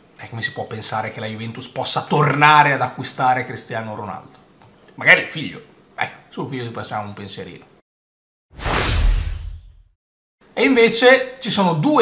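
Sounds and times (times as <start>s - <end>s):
whoosh sound effect: 8.6s - 9.9s.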